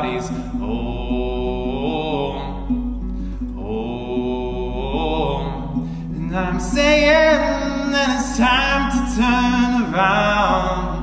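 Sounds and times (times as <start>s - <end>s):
acoustic guitar: 0.0s - 11.0s
man singing: 0.0s - 11.0s.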